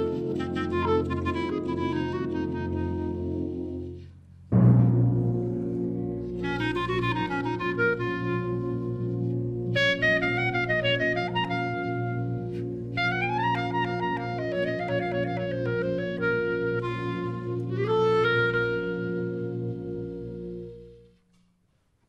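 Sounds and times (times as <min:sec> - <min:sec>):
solo clarinet: 0:00.0 - 0:04.1, 0:06.2 - 0:21.3
concert wind band chords: 0:00.0 - 0:21.2.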